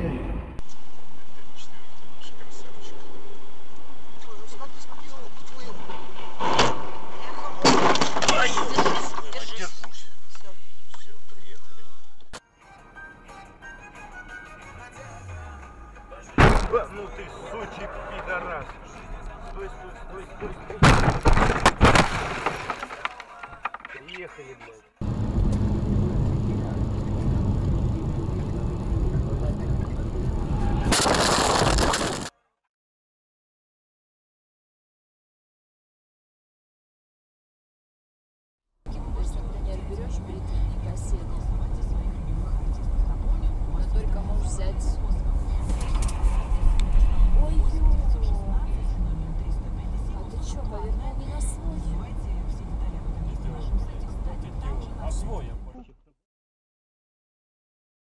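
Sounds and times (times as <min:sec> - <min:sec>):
car engine and road rumble: 0:00.0 - 0:32.3, 0:38.9 - 0:56.0
tyre and road rumble: 0:25.0 - 0:32.3.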